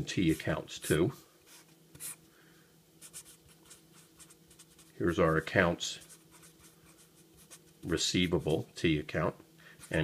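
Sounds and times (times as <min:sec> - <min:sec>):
marker scratching on paper: 0:00.2 - 0:02.2, 0:03.0 - 0:04.9, 0:05.9 - 0:08.4.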